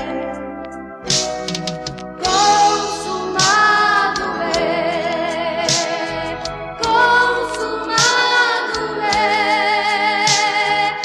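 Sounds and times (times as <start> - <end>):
instrumental accompaniment: 0.0 - 11.0
person singing with vibrato: 2.2 - 11.0.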